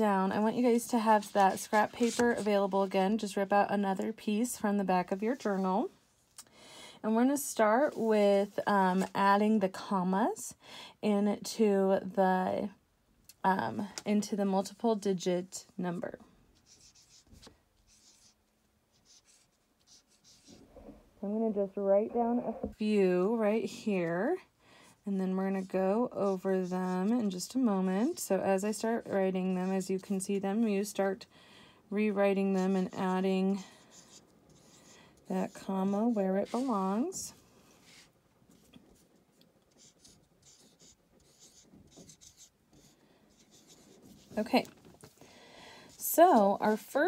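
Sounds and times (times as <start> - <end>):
marker scratching on whiteboard: 0.9 - 3.0, 16.6 - 20.6, 25.4 - 30.3, 32.1 - 38.7, 39.6 - 44.8.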